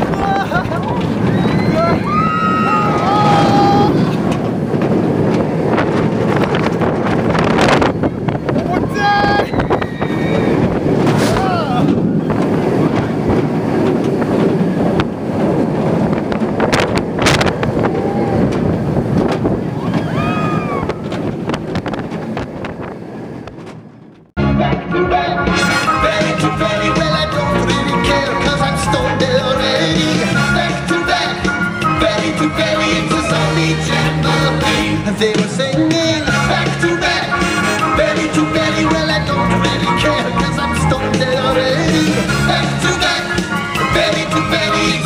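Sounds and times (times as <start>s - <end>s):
riders screaming: 0.0s - 4.2s, 8.6s - 13.2s, 17.6s - 18.8s, 19.6s - 21.3s
wind rushing over microphone: 0.0s - 24.4s.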